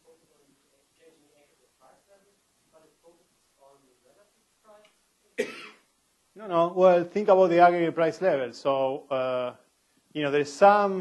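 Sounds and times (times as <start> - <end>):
person coughing: 5.4 - 5.8.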